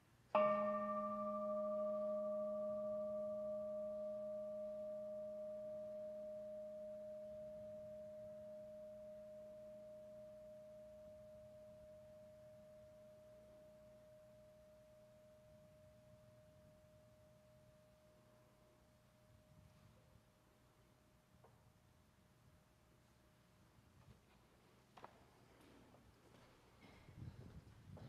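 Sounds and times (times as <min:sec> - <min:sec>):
singing bowl ringing: 0:00.4 - 0:19.0.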